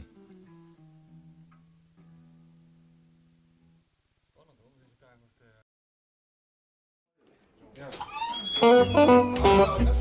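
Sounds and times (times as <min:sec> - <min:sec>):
acoustic guitar played quietly: 0:00.0 - 0:03.8.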